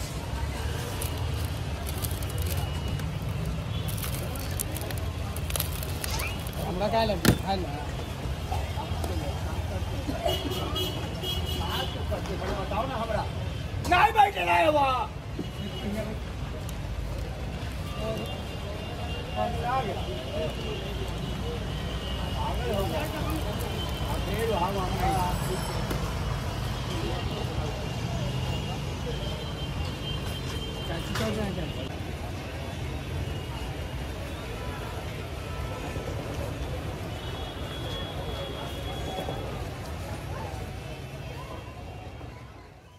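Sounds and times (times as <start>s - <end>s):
faint voices talking: 0.0s - 42.9s
low traffic rumble: 0.0s - 42.9s.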